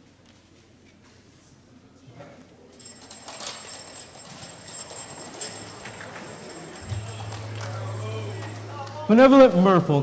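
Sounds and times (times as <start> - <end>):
high-pitched whine: 5.6 - 10.0.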